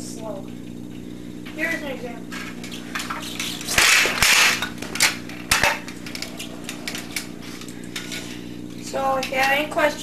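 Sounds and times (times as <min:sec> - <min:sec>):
kick scooter rattling: 0:01.6 - 0:10.0.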